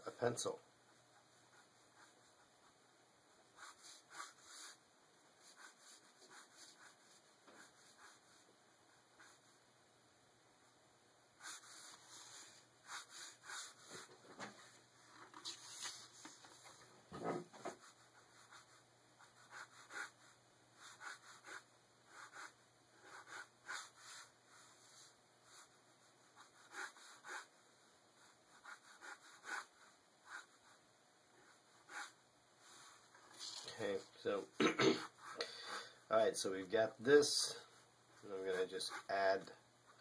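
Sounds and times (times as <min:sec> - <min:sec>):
ballpoint pen scratching on paper: 0:03.6 - 0:04.8, 0:05.4 - 0:08.4, 0:11.4 - 0:14.1, 0:17.2 - 0:24.3, 0:25.5 - 0:27.5, 0:28.2 - 0:30.8, 0:31.4 - 0:33.0.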